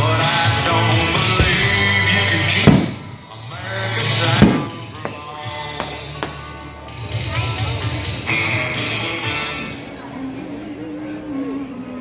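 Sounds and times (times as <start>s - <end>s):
rock music with singing: 0.0s - 9.9s
fireworks bursting with booms: 1.3s - 3.2s, 4.4s - 6.5s.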